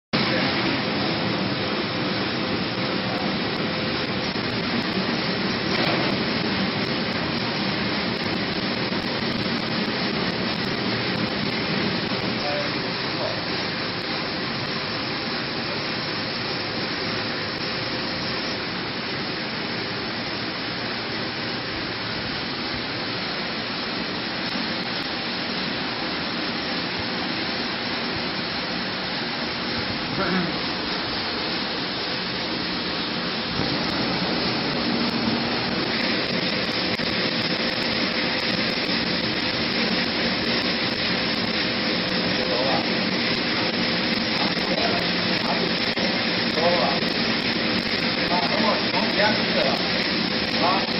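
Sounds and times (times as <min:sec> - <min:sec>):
food deep-frying in hot oil: 0:00.2 - 0:50.9.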